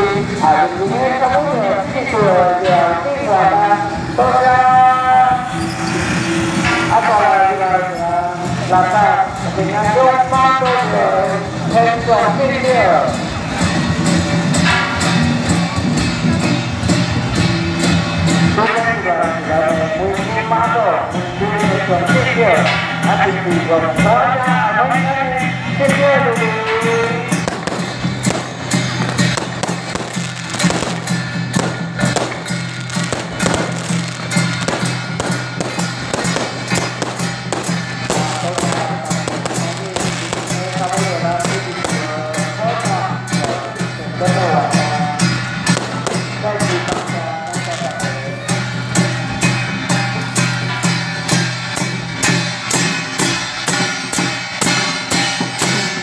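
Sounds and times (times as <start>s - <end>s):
firecrackers crackling: 0.0s - 19.3s, 26.0s - 56.0s
crowd voices: 0.0s - 56.0s
loud festival music: 0.0s - 56.0s.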